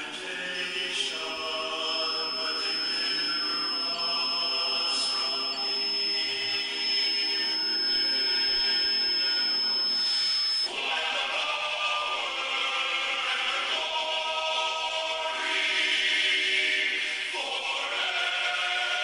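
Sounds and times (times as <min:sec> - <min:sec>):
thin high-pitched tone: 0:00.5 - 0:10.7
choir chanting: 0:10.7 - 0:19.0.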